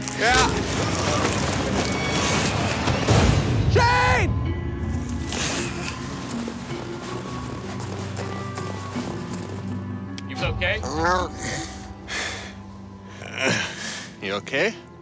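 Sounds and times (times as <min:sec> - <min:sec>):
branches crashing: 0:00.0 - 0:03.8
background music with held notes: 0:00.0 - 0:15.0
man yelling: 0:03.7 - 0:04.4.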